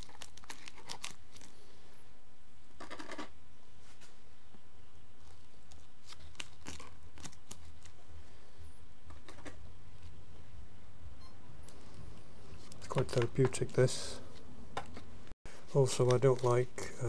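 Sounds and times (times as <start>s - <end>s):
steady low hum: 3.4s - 17.0s.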